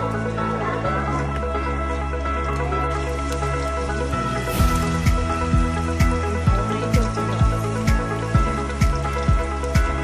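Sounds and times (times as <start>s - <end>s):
music with low drum beat: 4.5s - 10.0s.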